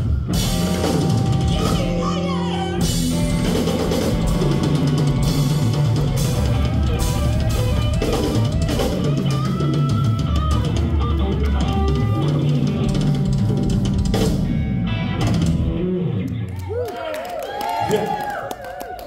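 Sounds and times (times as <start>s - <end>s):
live blues-funk band: 0.0s - 16.5s
electric guitar lines: 0.0s - 16.6s.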